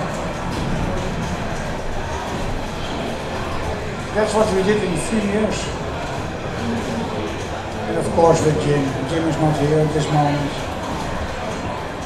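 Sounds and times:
exhibition hall background noise: 0.0s - 12.0s
pinball machine music: 0.0s - 12.0s.

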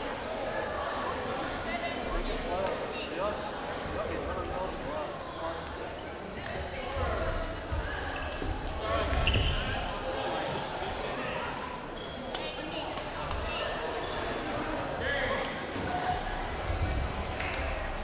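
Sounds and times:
echoing chatter of people: 0.0s - 18.0s.

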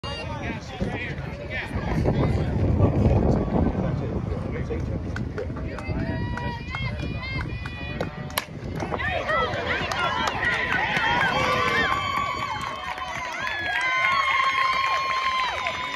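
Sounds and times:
crowd yelling and cheering: 5.7s - 15.9s.

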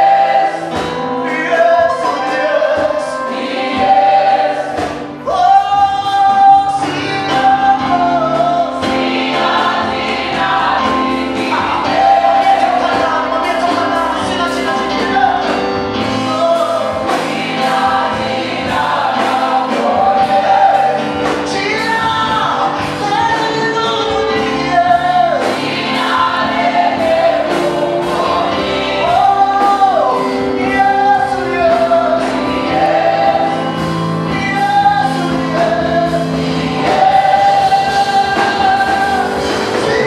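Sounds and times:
gospel choir singing with band: 0.0s - 40.0s.

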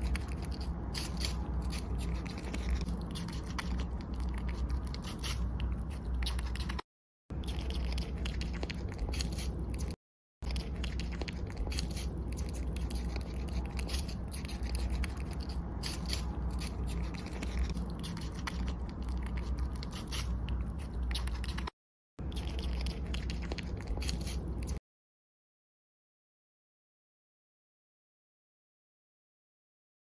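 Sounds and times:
low steady rumble: 0.0s - 24.8s
squirrel nibbling food: 0.0s - 24.8s.

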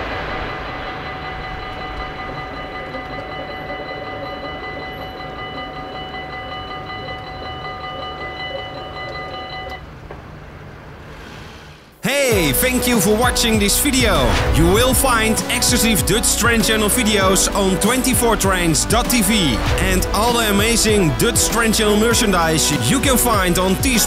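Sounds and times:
level crossing warning bell: 0.0s - 10.0s, 14.8s - 24.0s
train rumble: 0.0s - 24.0s.

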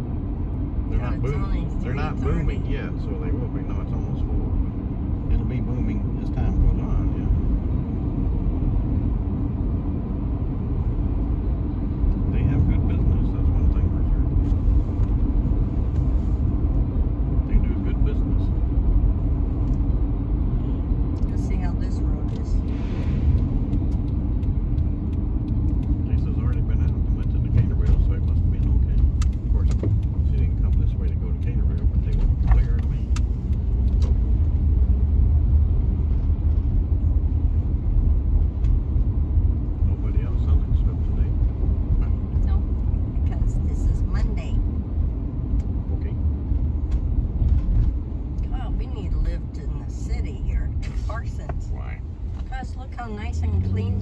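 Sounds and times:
car road rumble from inside: 0.0s - 54.0s.

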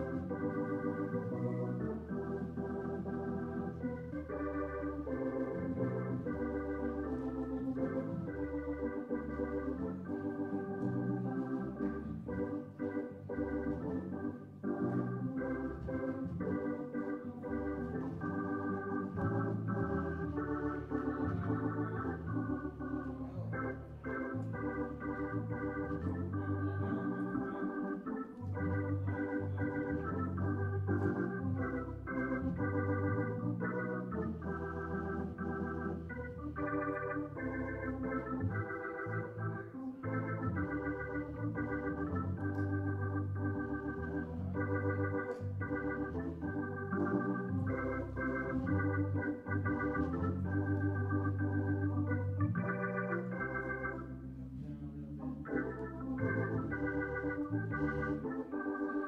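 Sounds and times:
organ playing chords: 0.0s - 59.0s.

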